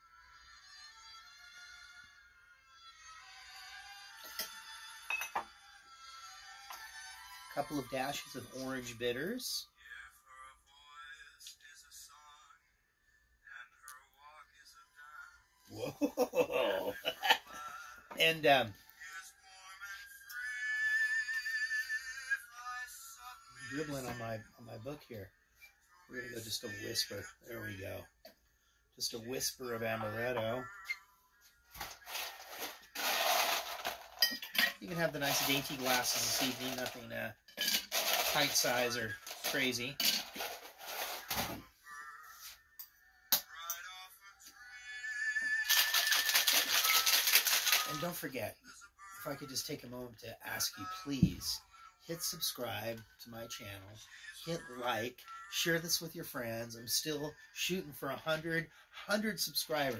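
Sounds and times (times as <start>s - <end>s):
high thin singing voice: 14.7s - 24.4s, 30.0s - 33.5s, 40.9s - 48.0s
ice rattling in cocktail shaker: 32.0s - 41.2s, 45.6s - 48.1s.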